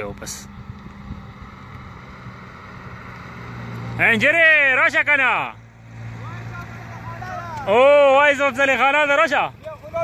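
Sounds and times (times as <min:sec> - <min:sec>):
vehicle engine approaching: 0:00.0 - 0:10.0.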